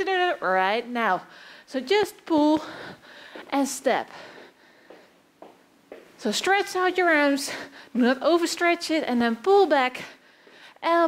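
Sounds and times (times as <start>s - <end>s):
person breathing: 1.3s - 1.7s, 2.6s - 3.5s, 4.1s - 5.2s, 7.5s - 8.0s, 10.0s - 10.8s
footsteps on wooden floor: 4.1s - 6.6s.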